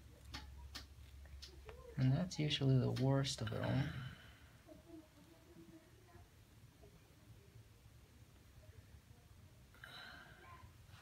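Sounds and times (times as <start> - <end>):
low steady hum: 0.0 - 11.0
faint voice: 3.6 - 11.0.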